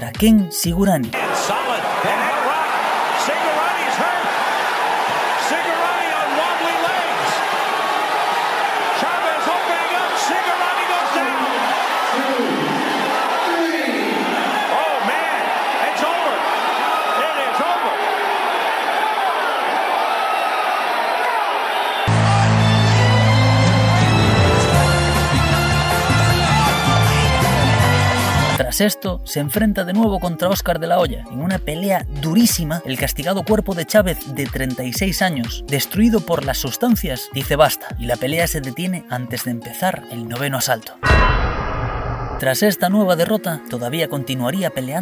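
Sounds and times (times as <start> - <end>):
crowd voices din: 1.1 - 28.6
music with heavy bass: 22.1 - 28.6.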